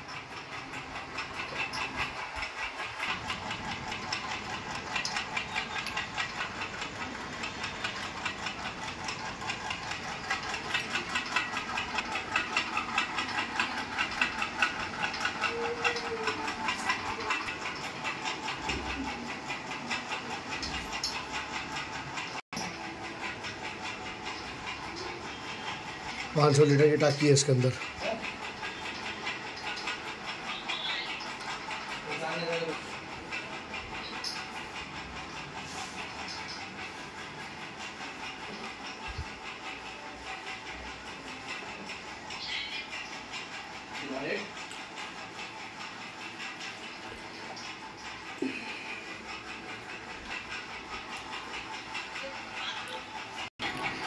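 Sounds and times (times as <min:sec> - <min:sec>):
rapid mechanical ticking clatter: 0:00.0 - 0:54.0.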